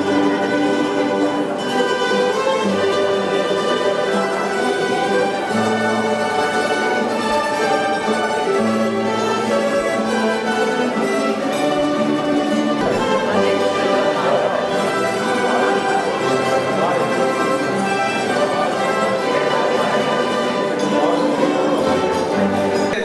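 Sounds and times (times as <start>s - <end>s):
violin music over bass line: 0.0s - 23.0s.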